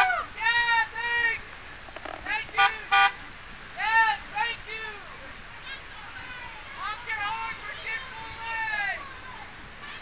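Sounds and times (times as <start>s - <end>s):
car horn beeps: 2.5s - 3.2s.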